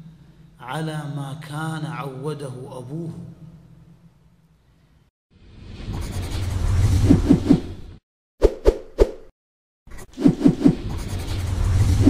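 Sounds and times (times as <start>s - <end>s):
whoosh with deep rumble: 5.5s - 8.0s, 10.3s - 12.0s.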